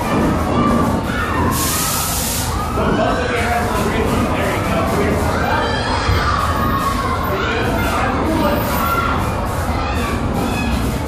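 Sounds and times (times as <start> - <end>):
crowd of children talking and shouting: 0.0 - 11.0.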